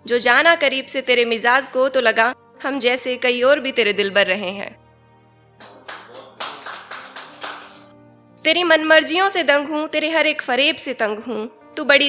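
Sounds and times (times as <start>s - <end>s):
soft background music: 0.0s - 12.0s
small audience clapping: 5.6s - 7.9s.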